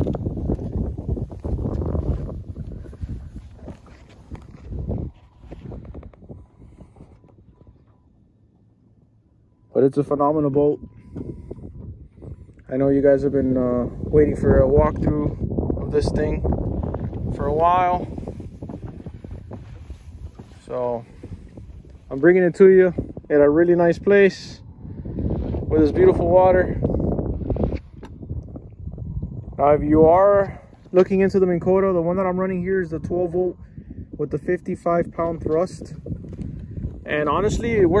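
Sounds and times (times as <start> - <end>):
water lapping against hull: 0.0 - 8.2, 10.1 - 23.5
wind buffeting microphone: 0.0 - 8.4, 9.1 - 38.0.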